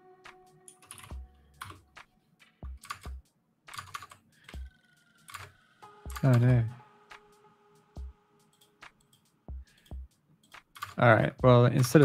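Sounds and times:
typing on computer keyboard: 0.7s - 1.8s, 2.8s - 5.5s, 8.6s - 11.0s.

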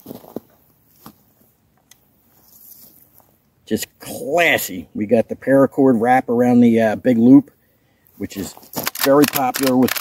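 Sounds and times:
rifle handling rustles and knocks: 8.4s - 10.0s.

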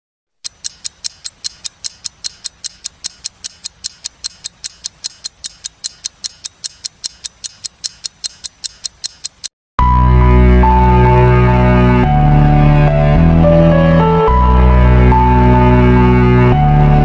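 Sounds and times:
clock ticking: 0.4s - 9.5s.

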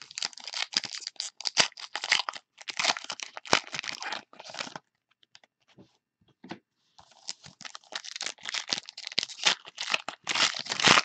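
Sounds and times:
foil pack tearing and crinkling: 7.6s - 11.0s.

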